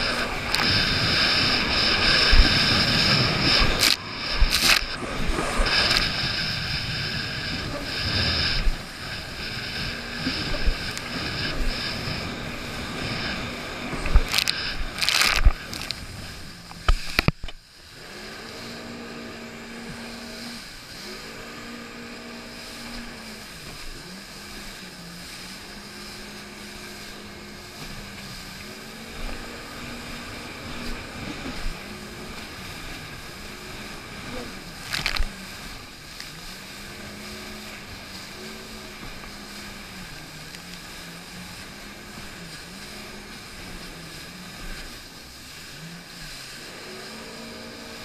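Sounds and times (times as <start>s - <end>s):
hull slapping on waves: 0.0s - 48.0s
jet ski engine running: 0.0s - 48.0s
rushing water: 0.0s - 48.0s.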